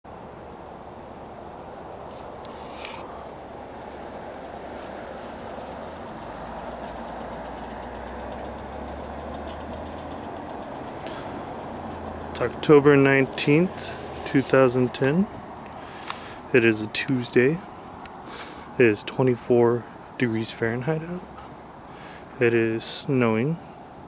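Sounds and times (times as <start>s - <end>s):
low engine rumble: 0.0s - 24.0s
tyre and engine noise: 0.0s - 24.0s.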